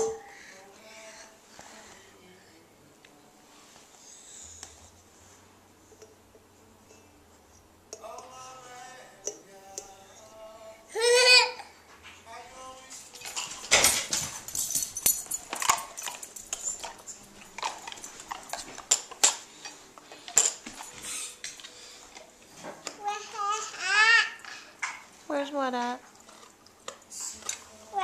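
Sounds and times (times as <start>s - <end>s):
toy cups and plates clattering: 13.1s - 21.7s.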